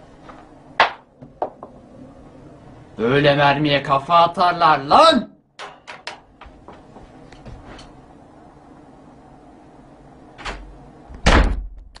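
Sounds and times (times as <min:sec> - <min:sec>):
wooden door slamming: 0:11.2 - 0:11.7.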